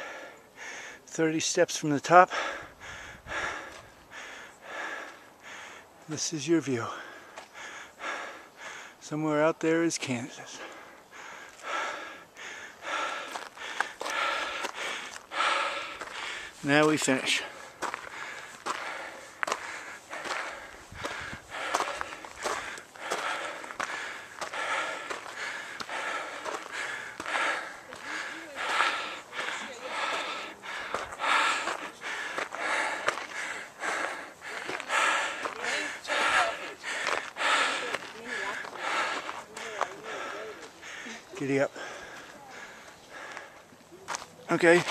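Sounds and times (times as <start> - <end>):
man breathing hard and rapidly: 0.0 - 9.1, 10.3 - 43.7.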